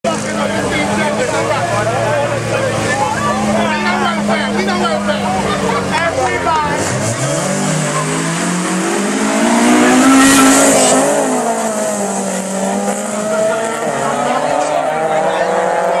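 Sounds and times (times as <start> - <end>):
car engines revving: 0.0 - 16.0
crowd shouting and talking: 0.0 - 16.0
tire squeal: 6.9 - 12.3.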